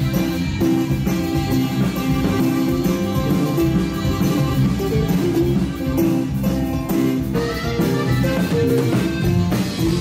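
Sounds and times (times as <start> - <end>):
bajo sexto strummed: 0.0 - 10.0
electric bass: 0.0 - 10.0.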